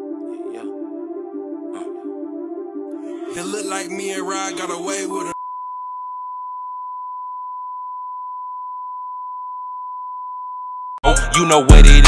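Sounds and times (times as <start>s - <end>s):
steady test tone beep: 5.4s - 11.0s.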